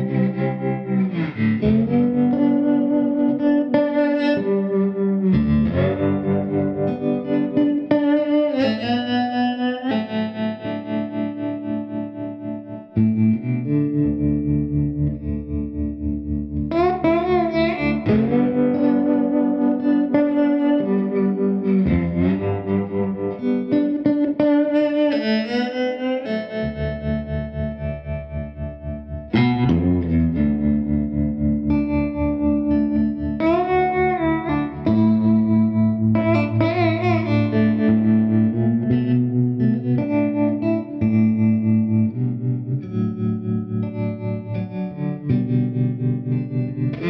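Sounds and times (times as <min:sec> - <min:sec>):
slide guitar playing slow blues: 0:00.0 - 0:47.0.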